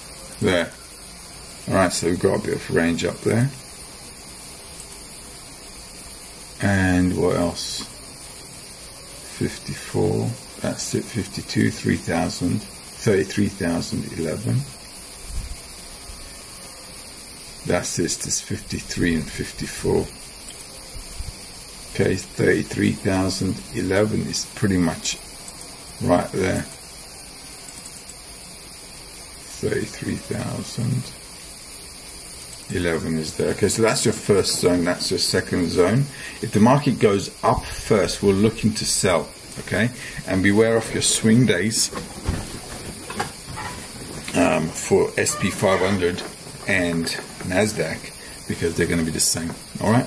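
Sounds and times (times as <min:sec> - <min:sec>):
steady background hiss: 0:00.0 - 0:50.0.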